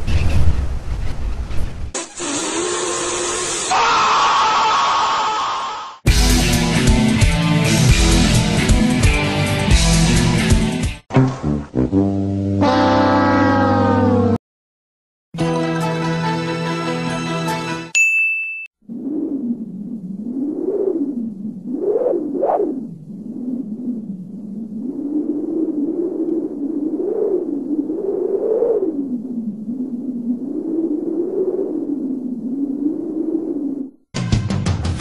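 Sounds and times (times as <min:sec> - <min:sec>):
music: 0:06.1 - 0:12.6, 0:15.4 - 0:18.0, 0:34.2 - 0:35.0
bright ding: 0:18.0 - 0:18.7
noisy sound effect with hum: 0:18.8 - 0:34.0.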